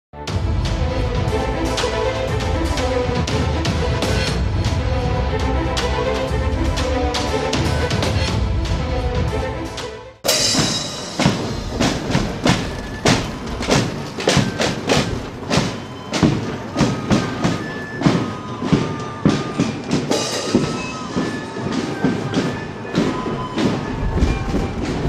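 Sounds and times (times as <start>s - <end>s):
marching drum beats: 0.3s - 9.5s, 10.2s - 25.0s.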